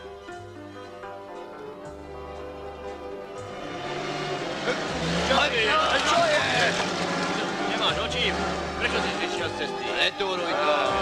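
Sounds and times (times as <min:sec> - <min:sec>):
jeep engine revving: 0:03.2 - 0:11.0.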